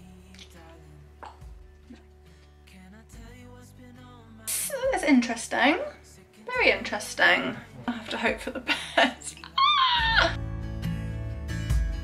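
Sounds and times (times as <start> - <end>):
background pop music: 0.0 - 12.0
short vocal sounds: 4.5 - 4.9
high whining vocal cry: 9.4 - 10.4.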